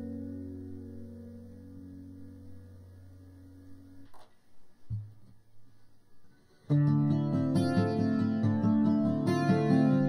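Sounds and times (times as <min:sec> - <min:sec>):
guitar chord ringing out: 0:00.0 - 0:04.0, 0:06.7 - 0:10.0.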